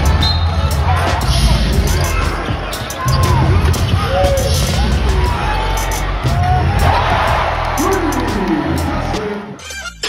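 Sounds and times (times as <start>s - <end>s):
arena crowd noise: 0.0s - 10.0s
music: 0.0s - 10.0s.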